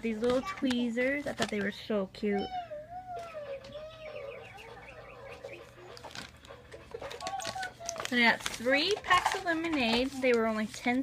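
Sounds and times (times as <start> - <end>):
cat yowling: 2.3 - 6.0.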